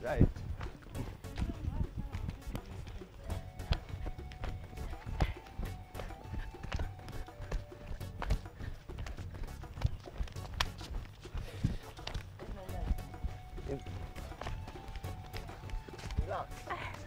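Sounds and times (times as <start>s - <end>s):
feet stamping on dry ground: 0.0s - 17.0s
music with held notes: 0.6s - 17.0s.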